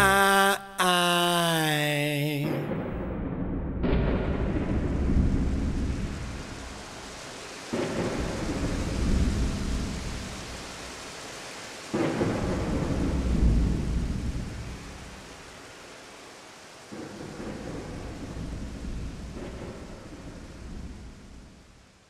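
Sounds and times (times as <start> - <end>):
thunder claps rumbling: 2.4 - 10.9, 11.9 - 15.3, 16.9 - 21.9
steady rain: 3.8 - 22.0.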